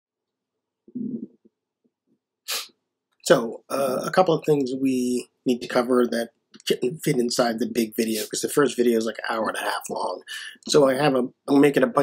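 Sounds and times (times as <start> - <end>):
person murmuring: 4.9 - 8.7, 9.4 - 11.1.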